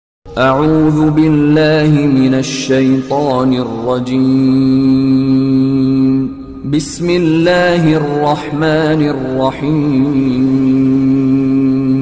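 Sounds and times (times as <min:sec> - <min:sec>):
chanted vocal line: 0:00.3 - 0:12.0.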